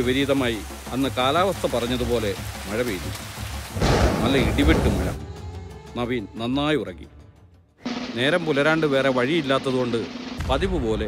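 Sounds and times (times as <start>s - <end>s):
steady rain: 0.0s - 5.2s, 7.9s - 10.8s
thunderclap rumbling: 3.8s - 5.2s.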